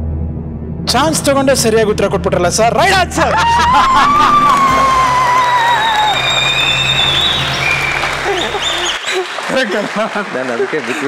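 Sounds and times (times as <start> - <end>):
studio audience applause: 3.4 - 11.0
celebratory quiz show music: 4.1 - 10.5.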